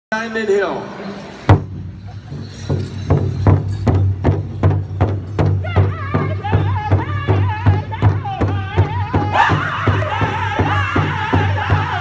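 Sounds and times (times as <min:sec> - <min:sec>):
large hide drum beating: 0:01.5 - 0:12.0.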